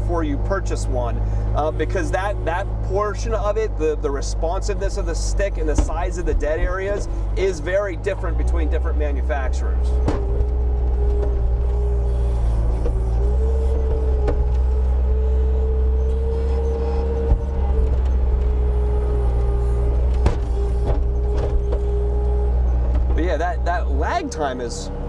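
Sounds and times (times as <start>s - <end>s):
diesel engine running: 0.0s - 25.0s
held machine whine: 0.0s - 25.0s
sharp knocks: 10.0s - 10.5s.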